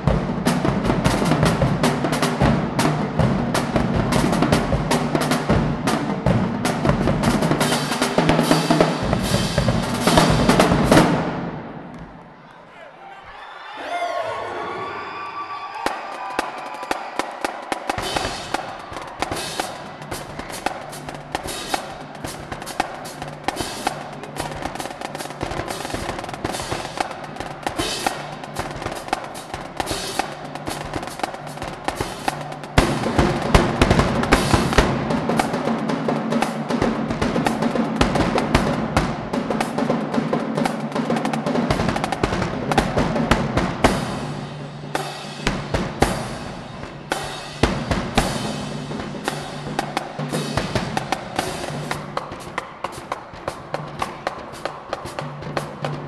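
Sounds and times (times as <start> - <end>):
marching drumline: 0.0 - 12.2, 15.6 - 56.0.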